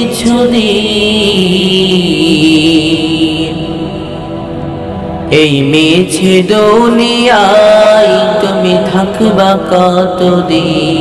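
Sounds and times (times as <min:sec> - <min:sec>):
droning backing: 0:00.0 - 0:11.0
person singing devotional song: 0:00.0 - 0:11.0.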